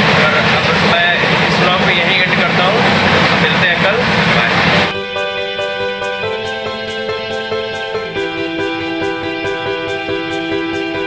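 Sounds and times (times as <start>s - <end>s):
voice: 0.0s - 4.8s
background music: 0.0s - 11.0s
train running noise: 0.0s - 11.0s.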